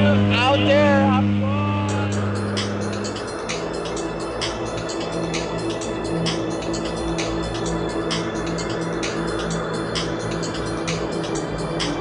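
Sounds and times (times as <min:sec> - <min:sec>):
propeller plane engine droning: 0:00.0 - 0:12.0
music with sharp even beat: 0:01.8 - 0:12.0.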